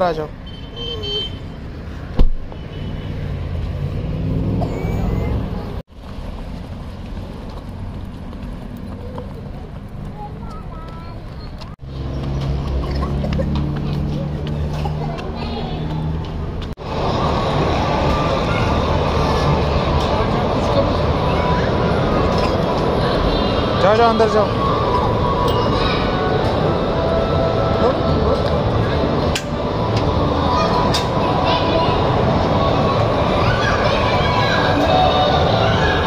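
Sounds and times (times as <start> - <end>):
car door slamming: 2.2 - 2.5
crowd voices: 13.0 - 36.0.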